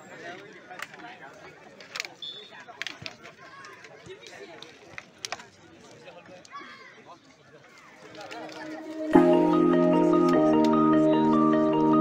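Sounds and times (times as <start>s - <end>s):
voices on football pitch: 0.0s - 9.2s
music: 8.8s - 12.0s.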